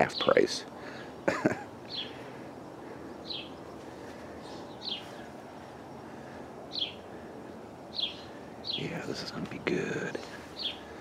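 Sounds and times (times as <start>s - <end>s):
outdoor background noise: 0.0s - 11.0s
small bird chirping: 1.0s - 11.0s.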